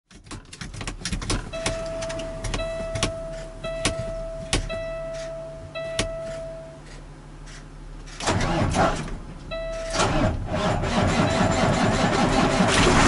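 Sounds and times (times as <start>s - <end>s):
dashboard warning tone: 1.5s - 7.0s, 9.5s - 10.1s.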